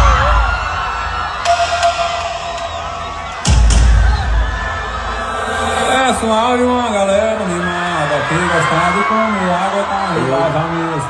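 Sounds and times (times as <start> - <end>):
heavy bass: 0.0 - 7.0
amplified band music: 0.0 - 7.5
crowd cheering and singing along: 0.0 - 11.0.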